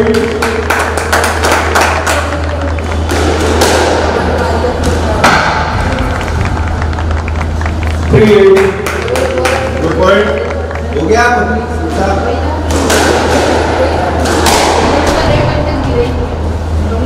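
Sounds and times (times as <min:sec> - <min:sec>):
steady low hum: 0:00.0 - 0:17.0
squash ball hitting rackets and walls: 0:03.0 - 0:06.8, 0:12.6 - 0:15.3.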